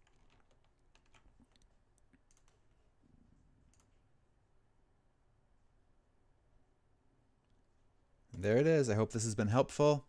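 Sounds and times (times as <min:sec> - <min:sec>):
keyboard and mouse clicks: 0:00.0 - 0:02.7, 0:03.7 - 0:04.0.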